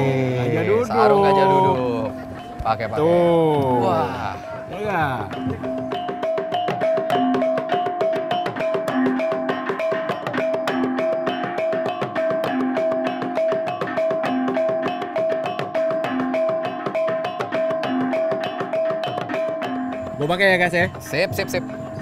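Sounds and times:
wooden percussion clatter: 4.5 - 22.0.

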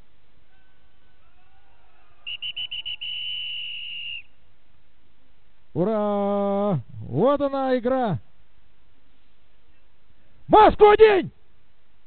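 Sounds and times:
referee's whistle toots and blast: 2.2 - 4.3.

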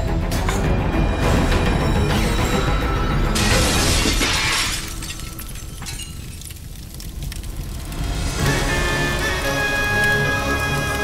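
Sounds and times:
dramatic background music: 0.0 - 4.2, 7.0 - 11.0
objects crashing and smashing: 3.3 - 6.8.

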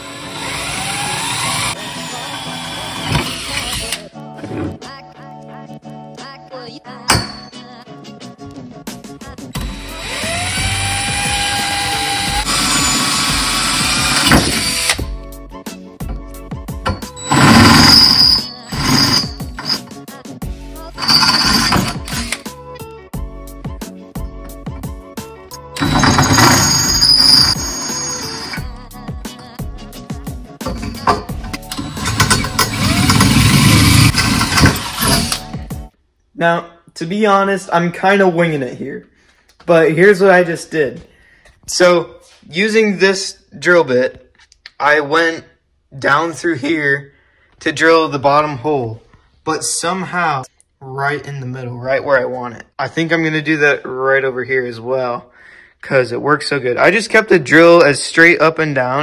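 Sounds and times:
power drill boring through metal: 0.0 - 4.1, 9.6 - 15.1, 16.8 - 20.0, 21.0 - 22.5, 25.8 - 28.7, 30.6 - 35.7
background music: 0.0 - 38.8.

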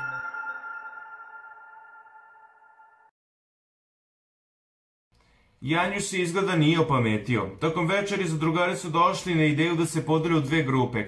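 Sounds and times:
chime jingle ringing tones: 0.0 - 3.1.

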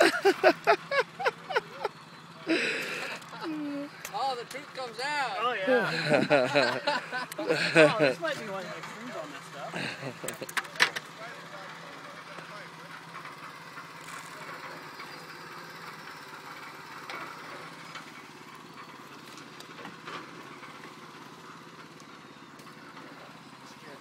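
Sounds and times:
distant voices talking: 0.0 - 24.0.

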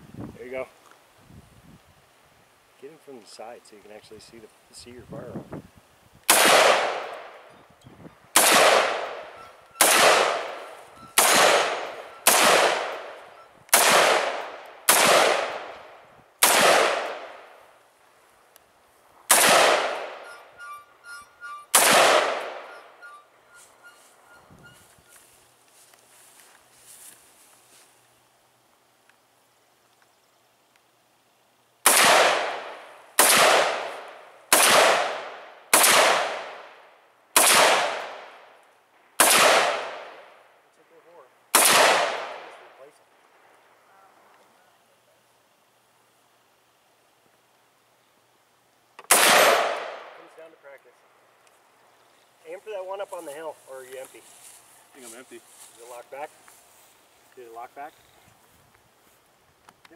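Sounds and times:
rifle shots: 6.3 - 7.3, 8.3 - 15.8, 16.4 - 17.5, 19.3 - 20.4, 21.7 - 22.8, 31.8 - 36.8, 37.4 - 38.4, 39.2 - 40.2, 41.5 - 42.6, 49.0 - 50.2.

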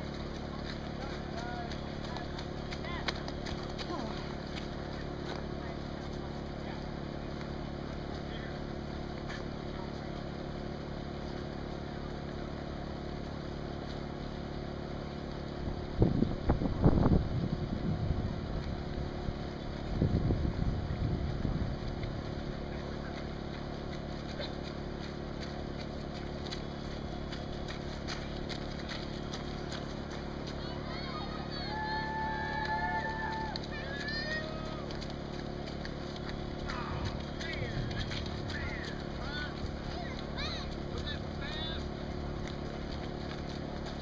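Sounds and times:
steady low hum: 0.0 - 44.0
wind buffeting microphone: 15.8 - 22.5.

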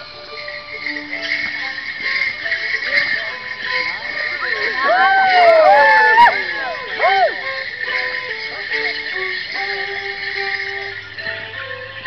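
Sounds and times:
jingling leg bells: 0.0 - 12.0
live folk dance tune: 0.0 - 12.0.

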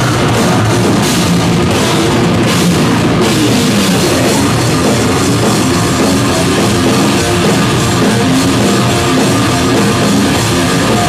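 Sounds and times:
distorted electric guitars: 0.0 - 11.0
drum kit: 0.0 - 11.0.

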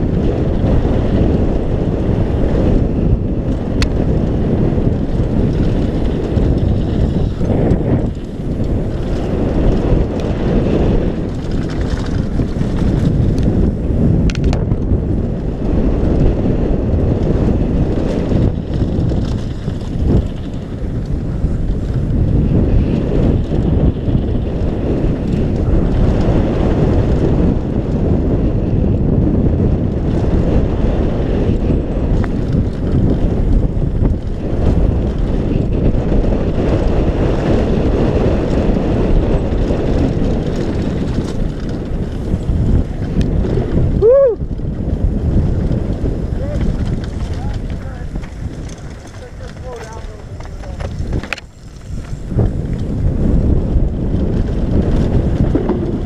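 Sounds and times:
bike rattling: 0.0 - 56.0
tyres rumbling on gravel trail: 0.0 - 56.0
wind buffeting microphone: 0.0 - 56.0.

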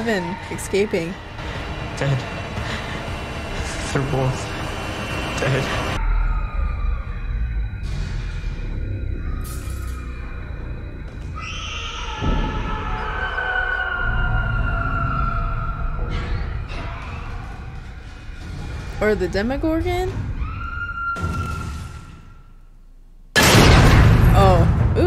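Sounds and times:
eerie suspense score: 0.0 - 22.6.

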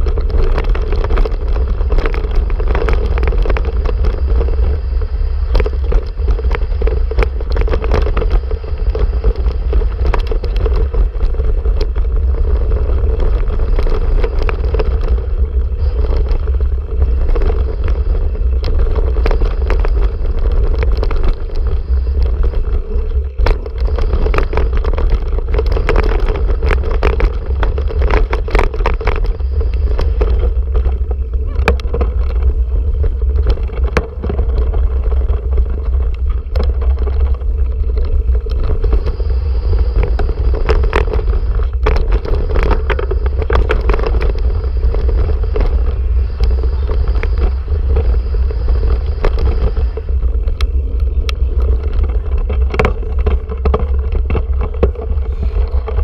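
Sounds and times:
bike rattling clicks and knocks: 0.0 - 56.0
tyre noise: 0.0 - 56.0
wind buffeting microphone: 0.0 - 56.0.

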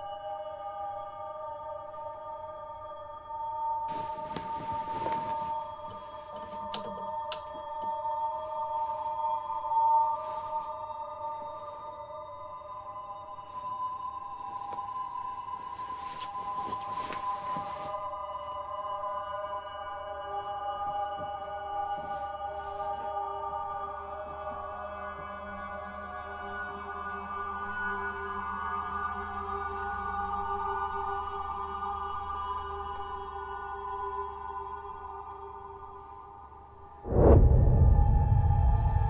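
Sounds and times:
eerie drone-like film score: 0.0 - 39.0
faint rustles: 3.9 - 6.8, 13.5 - 18.2.

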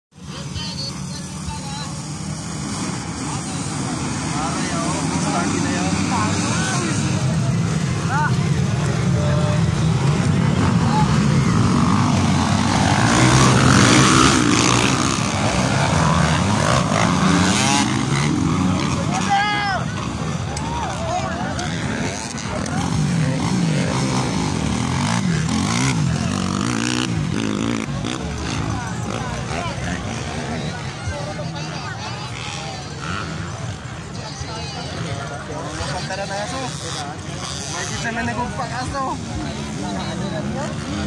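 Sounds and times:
dirt bikes revving past: 0.2 - 41.0
crowd shouting: 3.2 - 36.6.

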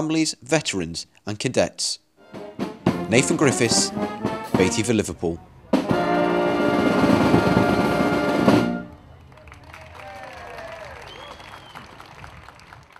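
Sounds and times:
brass band holding a chord: 2.2 - 9.0
drums and cymbals: 2.3 - 8.9.

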